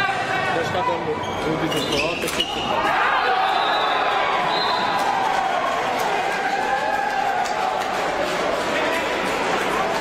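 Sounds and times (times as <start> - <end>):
players shouting: 2.4 - 10.0.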